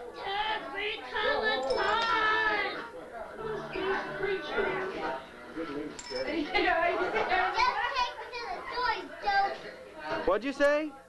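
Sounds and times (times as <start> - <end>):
children talking and calling out: 0.0 - 2.9, 6.6 - 10.0.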